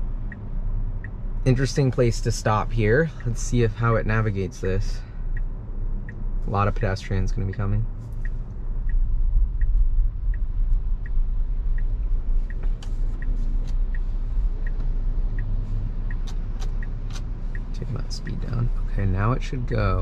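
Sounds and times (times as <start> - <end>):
car cabin road noise: 0.0 - 20.0
turn signal ticking: 0.0 - 20.0.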